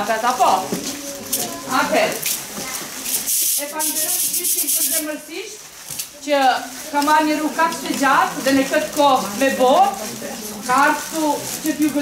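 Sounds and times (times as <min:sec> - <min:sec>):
woman and children talking: 0:00.0 - 0:03.0, 0:06.2 - 0:12.0
crowd noise hiss: 0:00.0 - 0:12.0.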